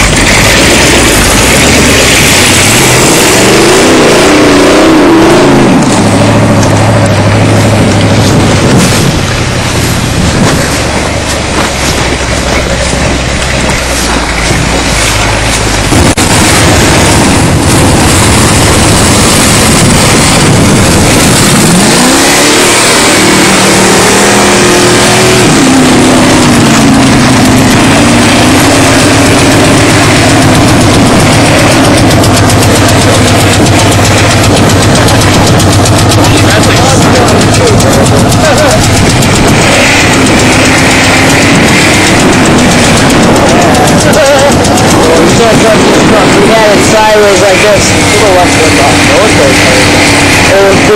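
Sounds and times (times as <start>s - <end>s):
loud constant rushing noise: 0.0s - 50.9s
truck engine revving: 0.0s - 50.9s.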